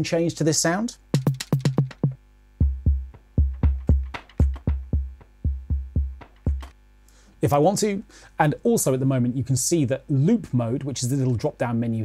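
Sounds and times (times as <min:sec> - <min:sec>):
sampled drum loop: 0:01.1 - 0:06.8.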